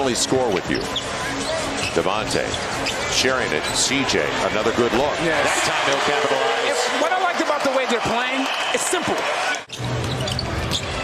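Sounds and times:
crowd din: 0:00.3 - 0:11.0.

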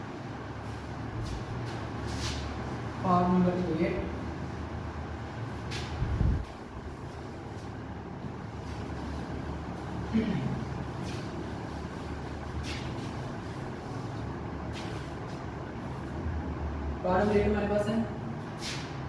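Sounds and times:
steady low hum: 0:00.0 - 0:19.0
duster rubbing on whiteboard: 0:10.9 - 0:16.0.

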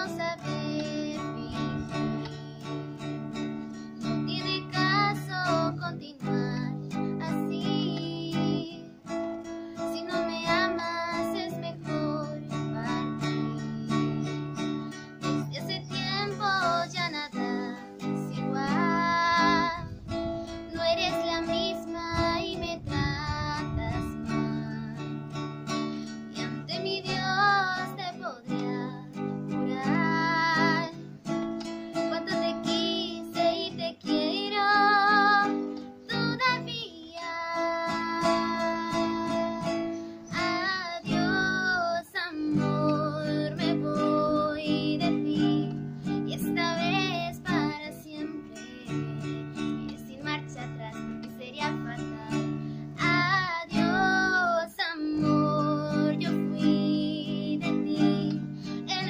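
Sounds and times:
strummed acoustic guitar: 0:00.0 - 0:59.0
woman singing a ballad: 0:00.0 - 0:59.0.

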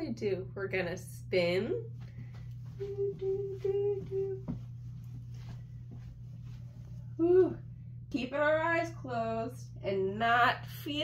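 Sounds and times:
low electrical hum: 0:00.0 - 0:11.0
faint shuffling: 0:01.9 - 0:07.6
person humming: 0:02.8 - 0:04.6, 0:07.2 - 0:07.6.

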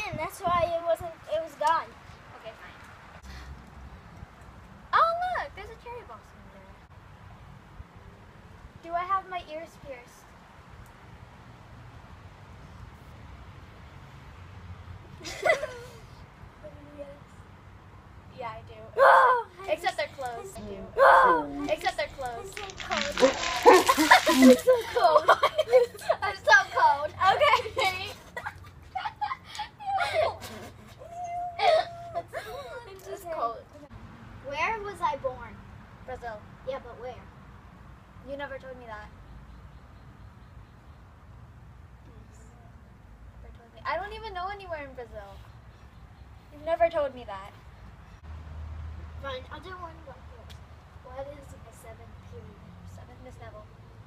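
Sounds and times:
girl squealing: 0:19.0 - 0:19.6, 0:20.9 - 0:21.7, 0:29.6 - 0:32.9
water scooped from metal bucket: 0:22.6 - 0:24.7.

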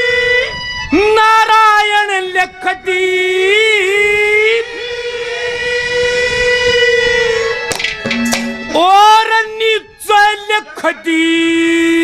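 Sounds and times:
man singing a long note: 0:00.0 - 0:07.7.

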